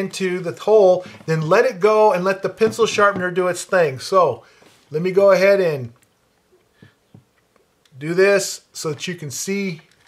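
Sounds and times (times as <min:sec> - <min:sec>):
speech: 0:00.0 - 0:06.0, 0:07.9 - 0:09.9.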